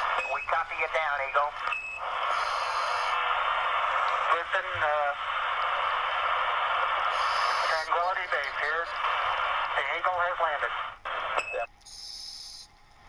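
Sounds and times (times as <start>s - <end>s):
radio static hiss: 0.0s - 12.7s
unclear voice over radio: 7.5s - 9.1s, 9.7s - 11.6s.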